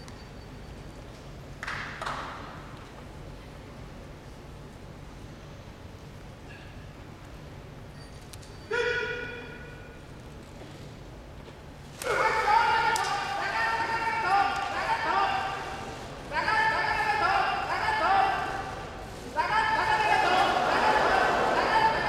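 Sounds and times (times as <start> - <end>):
referee shouting calls: 8.7 - 9.9, 12.0 - 22.0.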